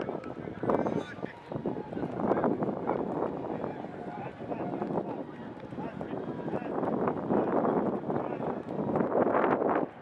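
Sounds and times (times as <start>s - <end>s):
voices of players: 0.0s - 8.8s
wind noise on microphone: 0.0s - 10.0s.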